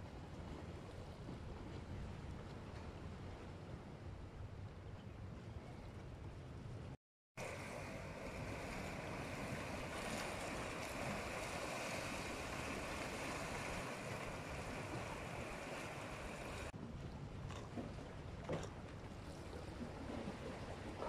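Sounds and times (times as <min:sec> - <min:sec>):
small waves splashing against rocks: 0:07.4 - 0:16.7.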